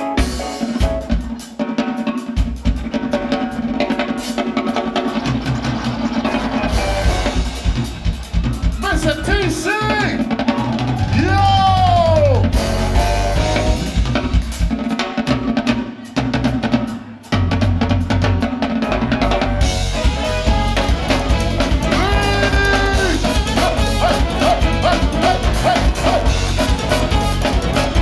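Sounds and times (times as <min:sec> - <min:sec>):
funk band playing: 0:00.0 - 0:28.0
held horn notes: 0:12.5 - 0:14.0, 0:19.6 - 0:28.0.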